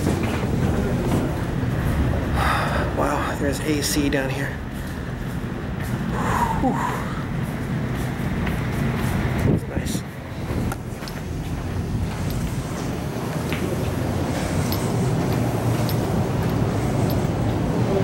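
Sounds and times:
fan noise: 0.0 - 18.0
machinery low hum: 0.0 - 18.0.

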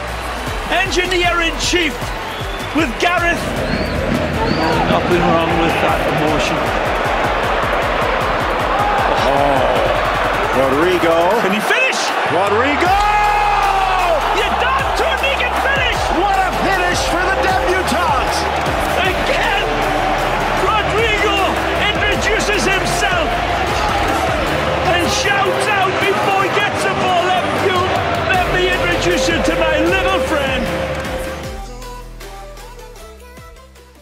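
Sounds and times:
background music with bass line: 0.0 - 11.4, 12.8 - 34.0
stadium crowd cheering: 0.0 - 31.8.

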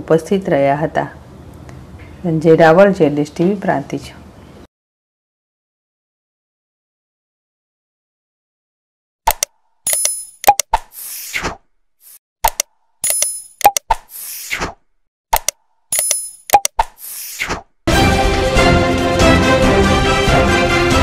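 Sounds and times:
mouse clicks: 9.3 - 10.9, 12.4 - 14.3, 15.4 - 17.2
music: 17.9 - 21.0.

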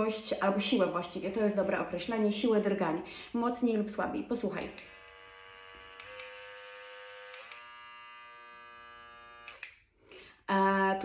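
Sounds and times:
electric cleansing brush buzzing: 4.3 - 9.8.

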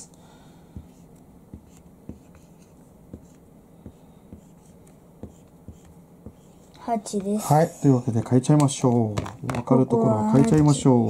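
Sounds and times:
marker writing on whiteboard: 0.8 - 7.5.

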